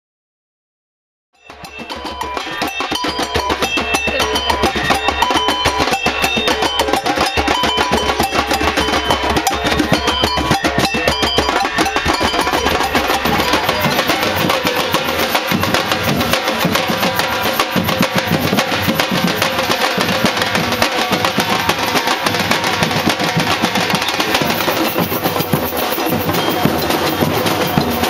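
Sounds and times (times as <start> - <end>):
fast drum rhythm: 1.4 - 28.0
short high notes: 1.5 - 18.2.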